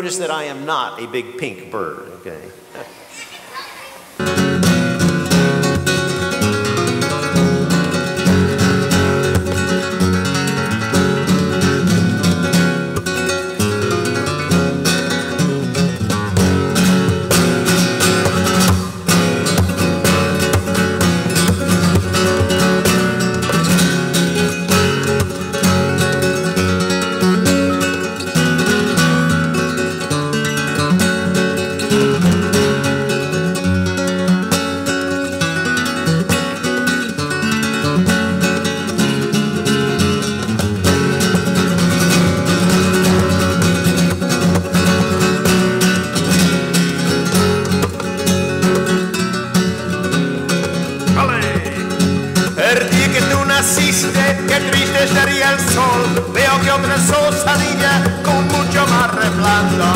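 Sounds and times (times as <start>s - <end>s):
flamenco guitar strumming: 3.3s - 59.9s.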